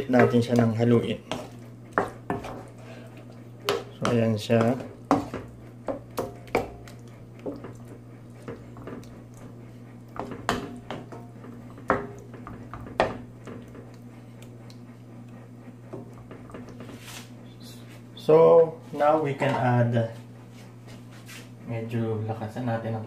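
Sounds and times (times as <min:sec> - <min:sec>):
steady low hum: 0:00.0 - 0:23.0
spatula scraping a pan: 0:00.1 - 0:06.8, 0:15.9 - 0:17.4.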